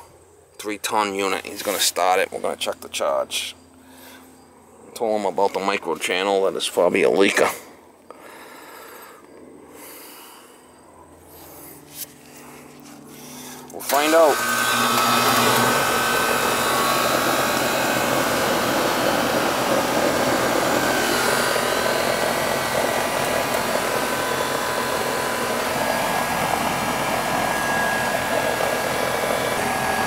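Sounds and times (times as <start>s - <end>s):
condenser fan air rush: 0.0s - 10.4s, 11.0s - 30.0s
faint hum: 0.0s - 13.9s.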